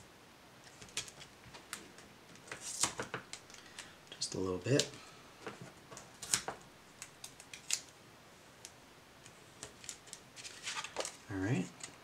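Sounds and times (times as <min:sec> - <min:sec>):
crackles and rustles: 0:08.6 - 0:12.0.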